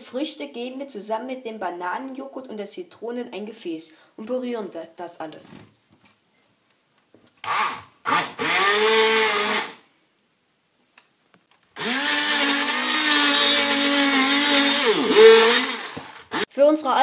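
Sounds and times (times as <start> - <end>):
immersion blender running: 7.4 - 9.8, 11.8 - 16.5.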